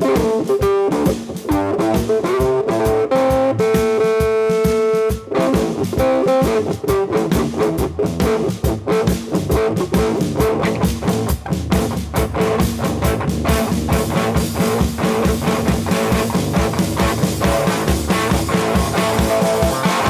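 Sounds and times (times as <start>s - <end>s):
busy drumming: 0.0s - 20.0s
electric guitar: 0.0s - 20.0s.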